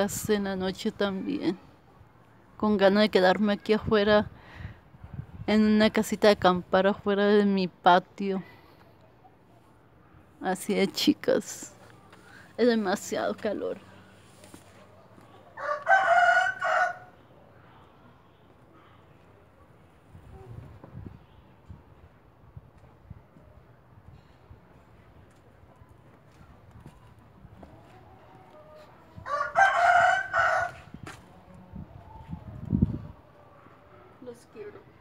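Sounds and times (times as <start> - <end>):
rooster crowing: 15.6 - 17.1, 28.8 - 30.9.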